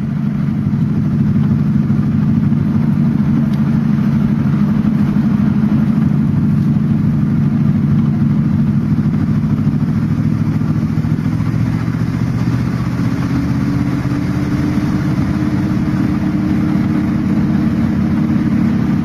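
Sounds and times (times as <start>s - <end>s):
car engine running: 0.0s - 19.0s
road and wind noise: 0.0s - 19.0s.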